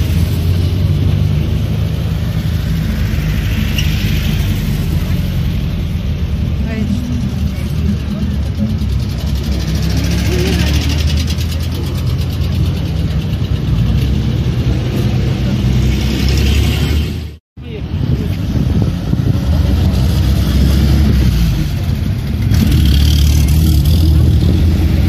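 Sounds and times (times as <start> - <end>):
vehicle engines low rumble: 0.0 - 25.0
crowd voices: 6.6 - 16.0.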